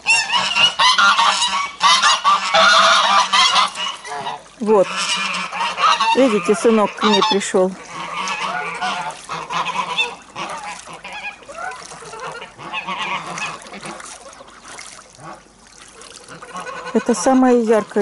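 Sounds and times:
geese honking: 0.0 - 18.0.

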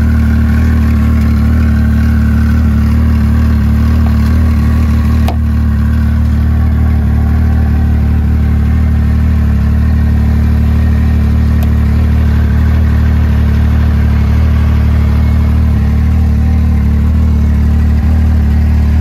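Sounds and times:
snowmobile engine idling: 0.0 - 19.0.

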